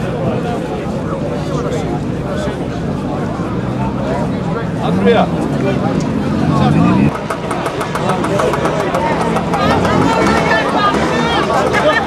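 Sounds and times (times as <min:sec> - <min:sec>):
people talking: 0:00.0 - 0:12.0
scooter engine revving: 0:04.0 - 0:12.0.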